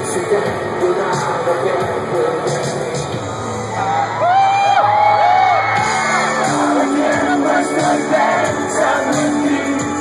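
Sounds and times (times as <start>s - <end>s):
live rock band playing: 5.7s - 10.0s
person singing: 6.1s - 10.0s.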